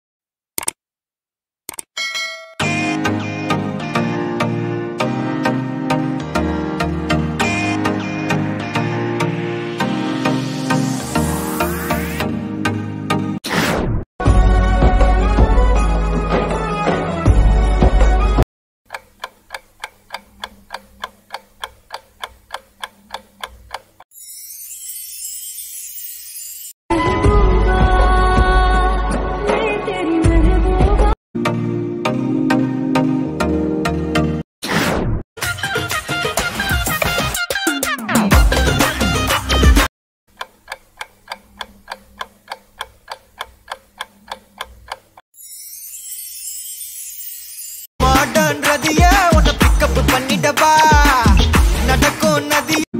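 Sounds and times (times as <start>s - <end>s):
music: 2.6s - 13.4s, 14.2s - 18.4s, 26.9s - 34.4s, 35.4s - 39.9s, 48.0s - 52.9s
clock ticking: 18.9s - 24.0s, 40.3s - 45.2s.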